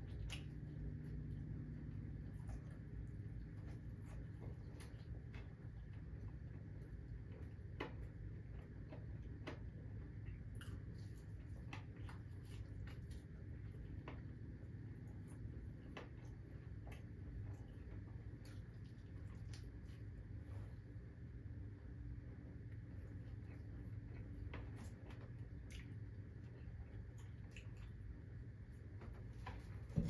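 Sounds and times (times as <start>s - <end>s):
person eating and chewing: 0.0s - 20.2s, 22.8s - 28.5s
low room hum: 0.0s - 30.0s.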